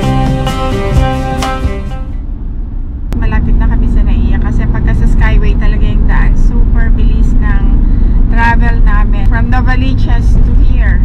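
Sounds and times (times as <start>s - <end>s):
car road and engine rumble: 0.0s - 11.0s
person talking: 3.2s - 11.0s.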